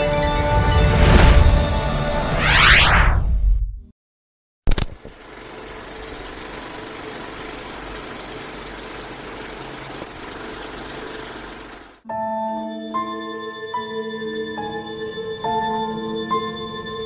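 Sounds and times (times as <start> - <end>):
sharp click: 4.7 - 5.2
machine running with rattling hum: 4.7 - 12.0.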